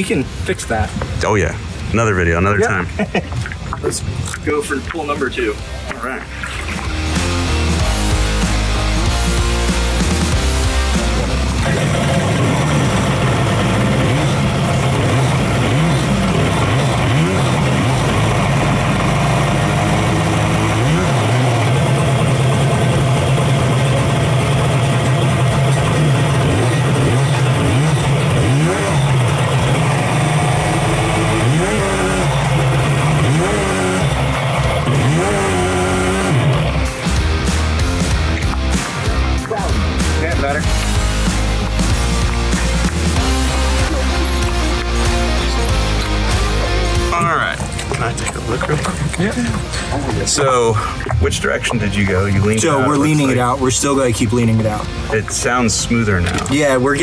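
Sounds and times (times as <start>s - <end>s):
jet ski engine revving: 5.2s - 57.0s.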